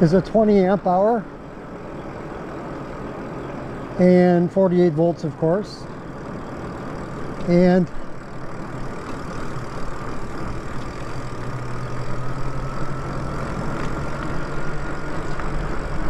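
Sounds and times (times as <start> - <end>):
electric bike motor whine: 0.0 - 16.0.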